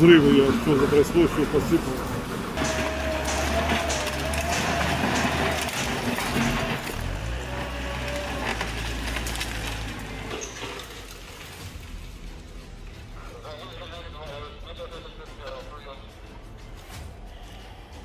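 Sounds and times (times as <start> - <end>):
loader engine running: 0.0 - 11.2
concrete debris crunching and clinking: 0.1 - 12.2.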